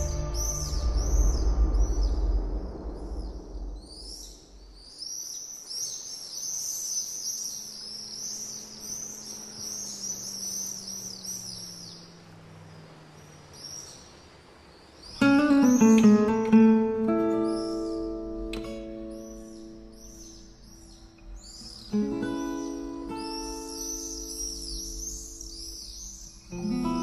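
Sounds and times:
background music: 0.0 - 2.8
high-pitched bird chirps: 0.0 - 12.0, 17.2 - 27.0
faint low steady hum: 0.0 - 27.0.

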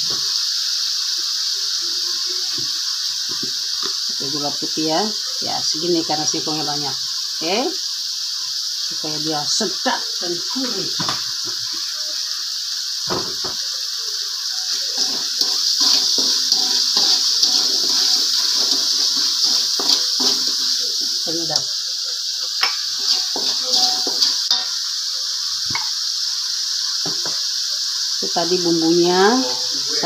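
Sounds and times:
paste sizzling in hot oil: 0.0 - 30.0
metal spatula scraping pan: 14.7 - 21.2, 22.6 - 24.8.

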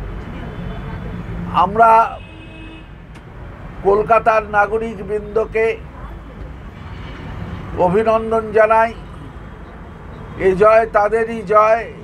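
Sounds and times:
man speaking: 7.8 - 9.0, 10.4 - 12.0.

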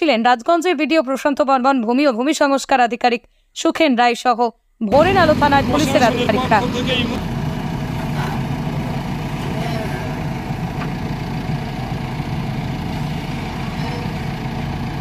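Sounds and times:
diesel engines running: 4.9 - 15.0.

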